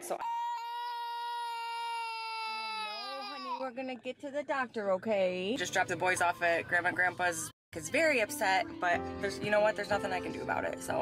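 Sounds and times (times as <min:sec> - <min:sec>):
girl crying wail: 0:00.2 - 0:03.6.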